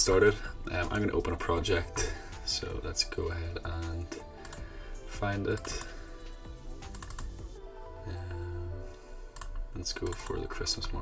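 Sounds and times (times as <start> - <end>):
quiet background music: 0.0 - 11.0
computer mouse clicks: 4.4 - 4.6, 5.6 - 7.5, 9.3 - 10.4.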